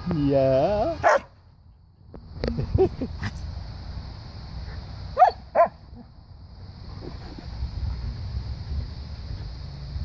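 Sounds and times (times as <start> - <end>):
dog barking: 1.0 - 1.3, 5.2 - 5.8.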